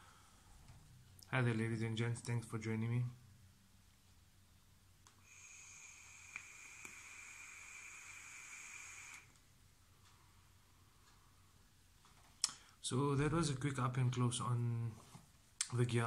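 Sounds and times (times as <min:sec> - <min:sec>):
air hissing through vape atomizer: 0:05.1 - 0:09.4.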